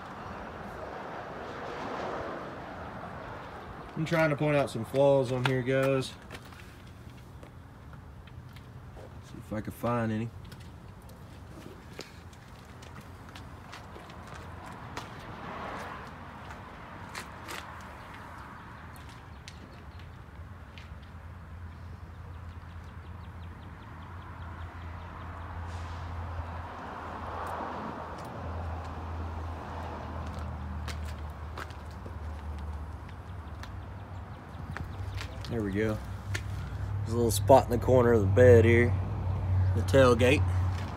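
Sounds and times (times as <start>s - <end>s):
footsteps on gravel: 10.5s - 19.8s, 30.2s - 33.8s.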